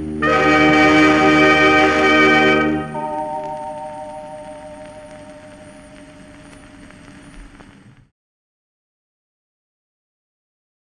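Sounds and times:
dance orchestra waltz chord: 0.0s - 6.1s
record crackles: 0.0s - 8.1s
record surface hiss: 0.0s - 8.1s.

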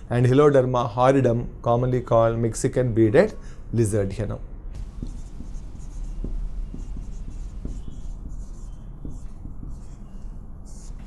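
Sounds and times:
low steady hum: 4.7s - 11.0s
marker writing on whiteboard: 4.8s - 11.0s.

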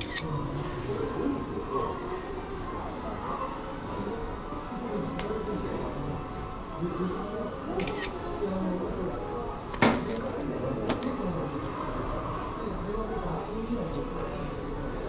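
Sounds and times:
indistinct chatter: 0.0s - 15.0s.

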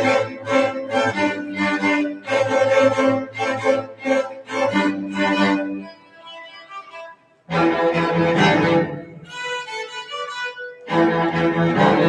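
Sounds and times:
string orchestra bowed chords: 0.0s - 12.0s.

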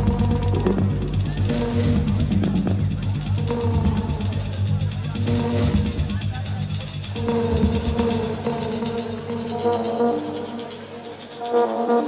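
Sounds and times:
bass and kick drum: 0.0s - 10.1s
electronic dance music: 0.0s - 12.0s
fast hi-hat ticks: 0.0s - 12.0s
synth chords: 0.0s - 12.0s.

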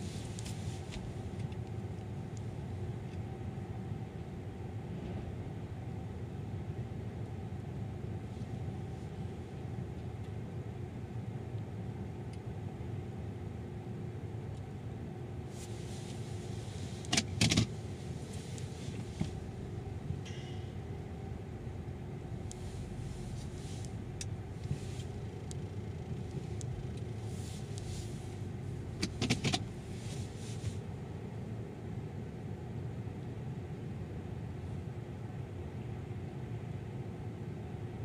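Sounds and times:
car engine idling: 15.7s - 30.6s.

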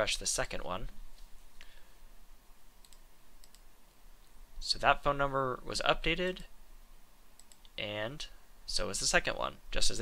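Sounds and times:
computer mouse clicks: 2.8s - 3.7s, 7.4s - 7.8s.

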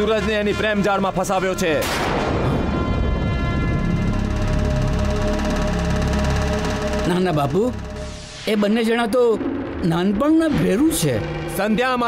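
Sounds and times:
dramatic film score chord: 0.0s - 12.0s
deep low drone: 2.2s - 12.0s.

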